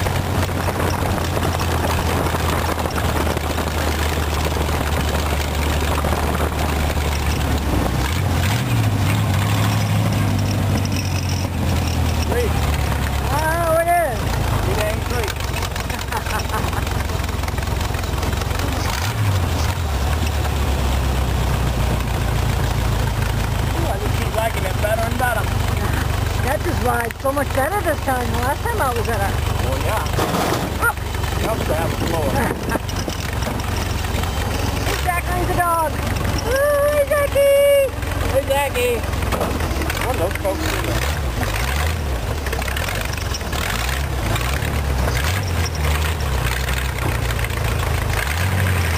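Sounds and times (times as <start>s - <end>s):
open-exhaust car engine running: 0.0s - 48.9s
road and wind noise: 0.0s - 48.9s.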